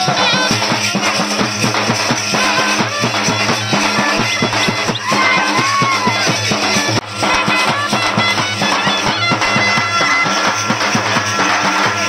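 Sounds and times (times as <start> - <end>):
brass horn melody: 0.0 - 12.0
drums beating quick rhythm: 0.0 - 12.0.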